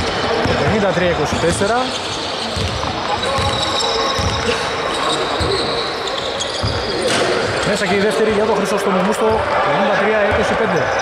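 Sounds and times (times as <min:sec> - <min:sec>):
basketball bouncing on wooden floor: 0:00.4 - 0:01.7, 0:02.6 - 0:04.5, 0:06.6 - 0:06.9.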